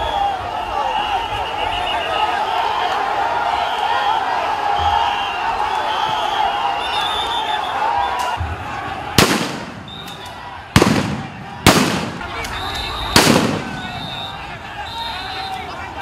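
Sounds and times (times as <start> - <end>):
crowd shouting: 0.0 - 16.0
gunshots with echo: 9.2 - 9.9, 10.8 - 12.4, 13.2 - 14.0.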